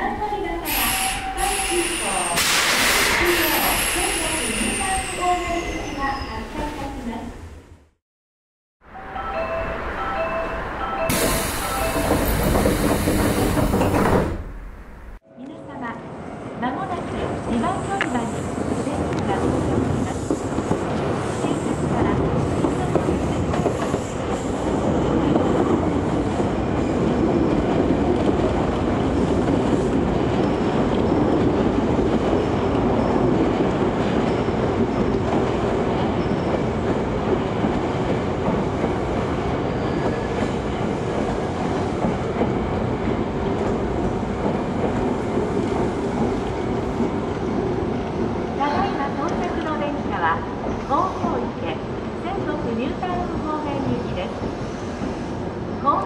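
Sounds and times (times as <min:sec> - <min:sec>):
train wheels rumbling on rails: 0:11.0 - 0:15.2, 0:16.8 - 0:56.0.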